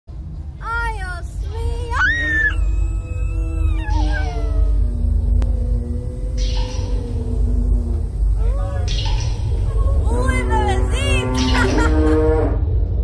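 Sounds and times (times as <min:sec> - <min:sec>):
girls screaming: 0:01.9 - 0:05.3.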